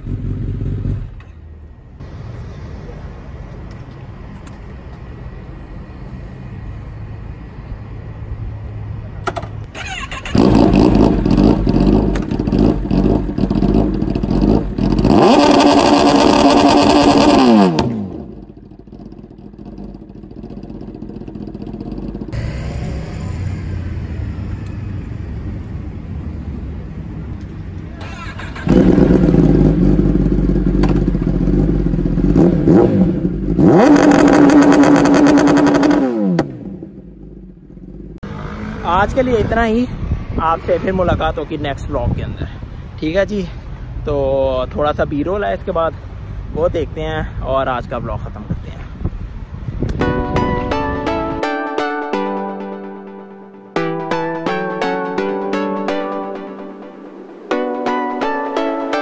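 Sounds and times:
motorcycle engine revving: 0.0s - 1.4s, 9.7s - 25.1s, 28.1s - 39.3s.

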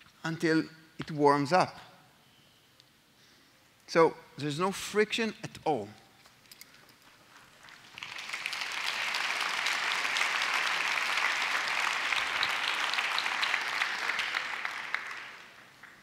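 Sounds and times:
audience applauding: 7.6s - 16.0s.

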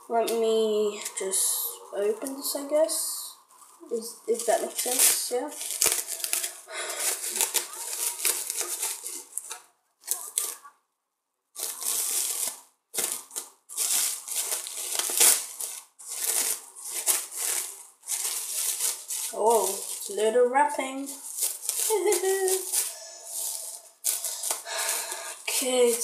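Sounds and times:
plastic wrapping crinkling: 3.4s - 10.7s, 11.6s - 26.0s.

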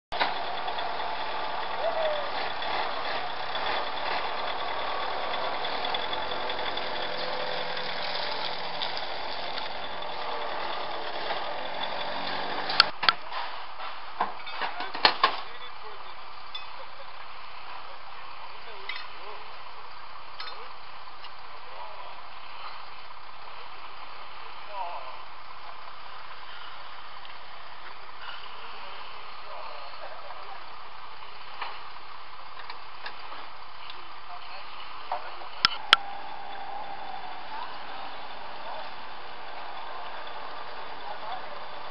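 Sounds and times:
low hum: 0.1s - 13.0s, 33.0s - 41.9s
people talking: 0.2s - 13.6s, 14.5s - 19.6s, 24.7s - 25.3s, 29.4s - 30.8s, 34.2s - 41.9s.

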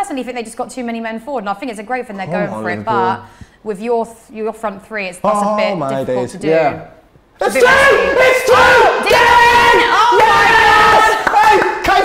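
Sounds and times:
people shouting and cheering: 7.4s - 12.0s.

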